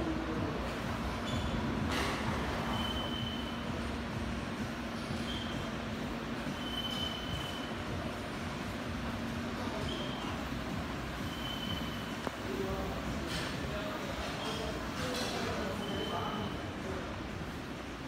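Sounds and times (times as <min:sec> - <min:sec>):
workshop machinery hum: 0:00.0 - 0:18.0.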